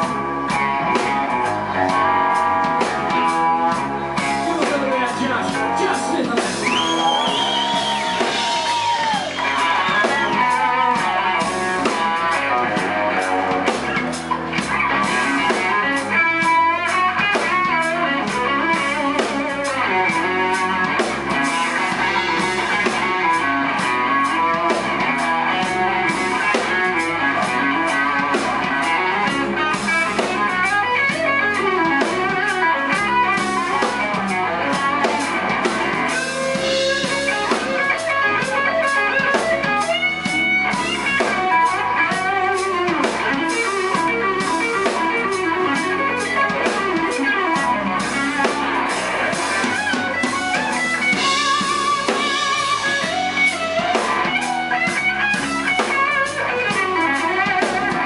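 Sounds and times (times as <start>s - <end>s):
live blues band playing: 0.0s - 58.0s.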